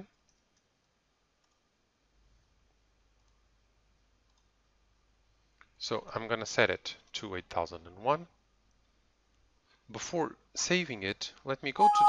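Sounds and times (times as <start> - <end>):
faint clicks: 0.1 - 1.6, 4.2 - 4.5.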